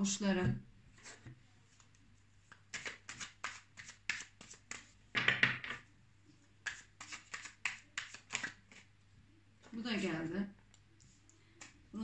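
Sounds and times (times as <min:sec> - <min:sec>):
cards shuffling: 0:01.0 - 0:04.9, 0:06.6 - 0:08.9.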